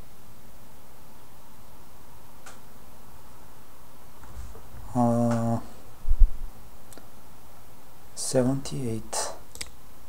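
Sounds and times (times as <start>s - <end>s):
man humming: 4.8s - 5.8s.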